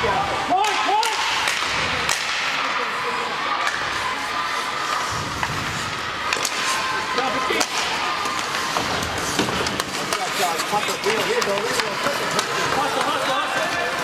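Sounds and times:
faint shouting voices: 0.0s - 14.0s
hockey sticks and puck clacking: 0.4s - 14.0s
skates scraping on ice: 1.4s - 14.0s.

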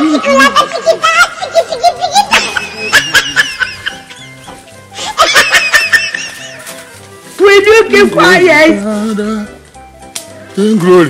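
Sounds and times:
background music with held notes: 0.0s - 11.0s
bursts of laughter: 0.2s - 6.7s.

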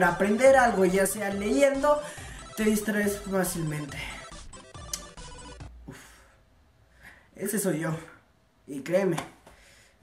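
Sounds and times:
phone ringtone electronic tune: 0.0s - 5.8s.

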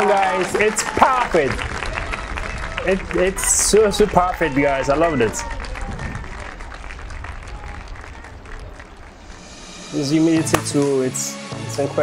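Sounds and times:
audience applause: 0.0s - 9.6s.

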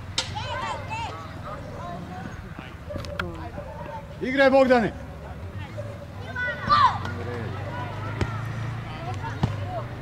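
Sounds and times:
children calling and shouting: 0.0s - 10.0s.

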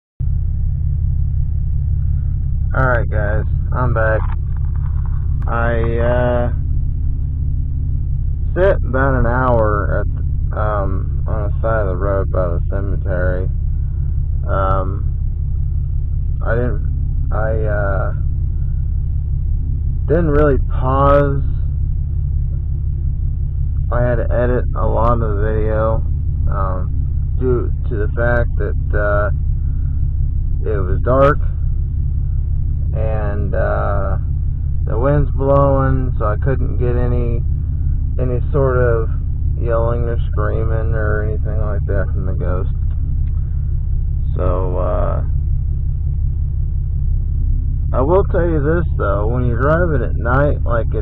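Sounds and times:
car engine and road noise: 0.2s - 51.0s.

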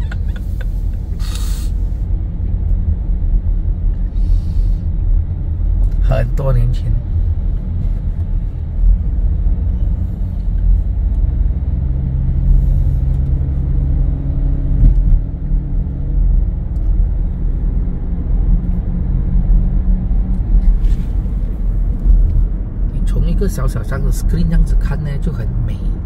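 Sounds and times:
steady low hum: 0.0s - 23.5s
car engine and road rumble: 0.0s - 26.0s.

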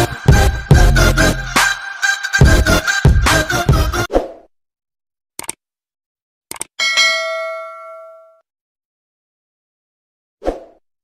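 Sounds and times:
intro music: 0.0s - 4.1s
short clicks: 5.4s - 5.6s, 6.5s - 6.8s
bell ding: 6.8s - 8.4s.

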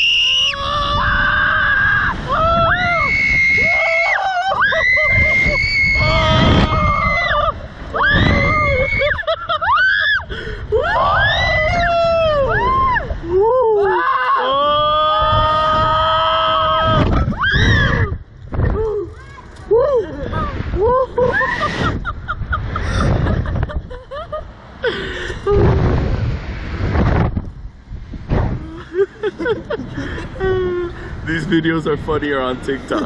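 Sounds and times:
people screaming: 0.0s - 18.2s
rush of wind: 0.0s - 33.0s
person screaming: 10.8s - 18.1s.

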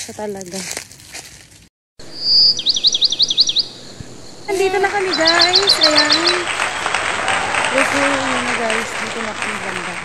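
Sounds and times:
songbird singing: 2.0s - 9.6s.

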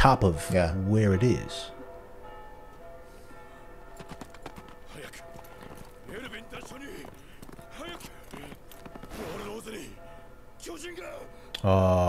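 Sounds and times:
soft background music: 0.0s - 12.0s
horse hooves galloping: 3.9s - 10.0s.

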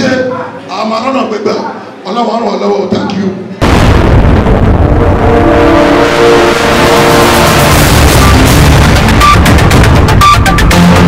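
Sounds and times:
ident music: 4.4s - 11.0s.

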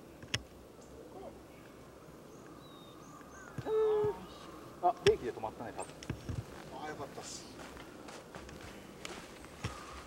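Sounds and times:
faint high bird chirps: 0.8s - 4.6s.

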